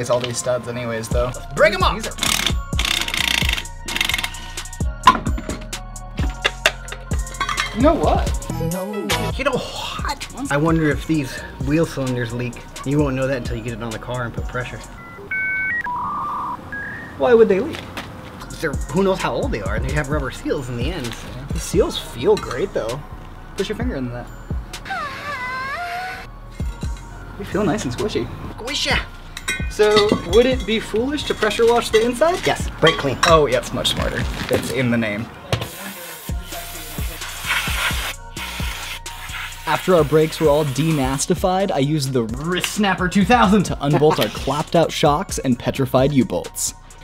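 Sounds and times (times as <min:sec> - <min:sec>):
background music with steady beat: 0:00.0 - 0:16.0, 0:18.4 - 0:24.9, 0:26.2 - 0:34.4, 0:35.6 - 0:47.0
electronic beeps: 0:14.8 - 0:17.3
aerosol spray hissing: 0:35.6 - 0:41.2.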